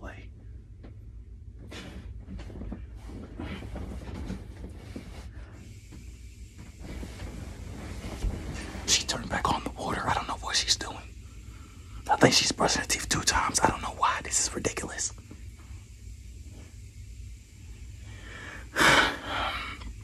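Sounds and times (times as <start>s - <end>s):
low steady hum: 0.0s - 20.0s
bedding rustling: 1.5s - 10.2s.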